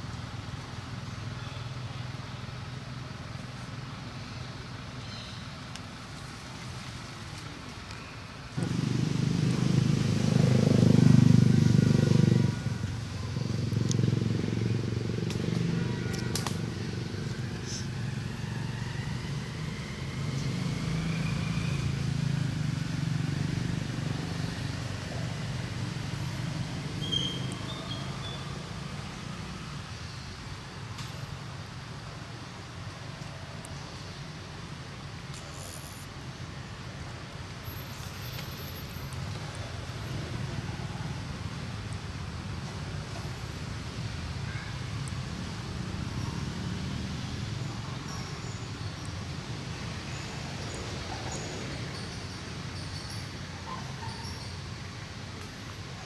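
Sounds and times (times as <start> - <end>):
motor engine droning: 8.6 - 28.8.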